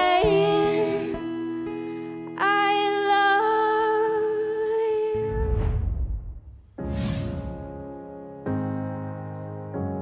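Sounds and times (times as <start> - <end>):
low whoosh: 5.2 - 8.0.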